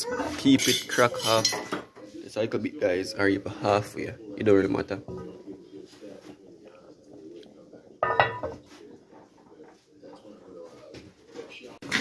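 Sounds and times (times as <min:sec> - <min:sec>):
metal cookware clanking: 0:00.5 - 0:01.9, 0:08.0 - 0:08.6.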